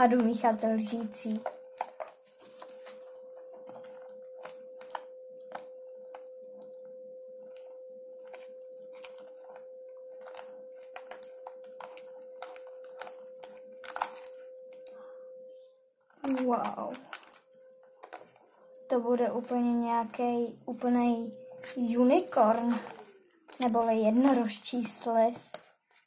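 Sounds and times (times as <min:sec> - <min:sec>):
spoon stirring slime: 0:00.0 - 0:14.4
steady single-pitched hum: 0:00.0 - 0:26.0.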